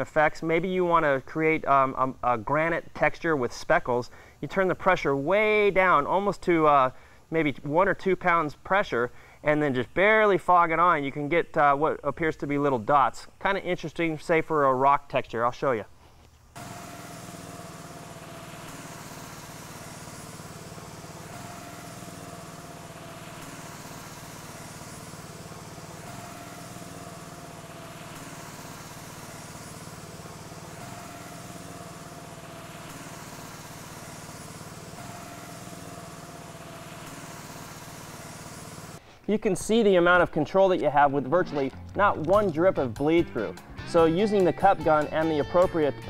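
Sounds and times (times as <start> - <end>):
spray gun air supply hissing: 16.6 - 39.0.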